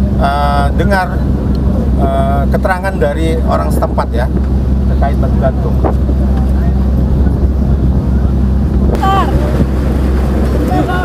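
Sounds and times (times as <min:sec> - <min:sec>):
boat engine droning: 0:00.0 - 0:11.0
wind on microphone: 0:00.0 - 0:11.0.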